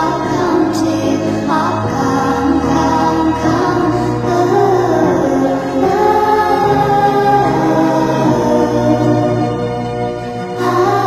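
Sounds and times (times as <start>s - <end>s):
sped-up pop song with singing: 0.0s - 9.6s, 10.6s - 11.0s.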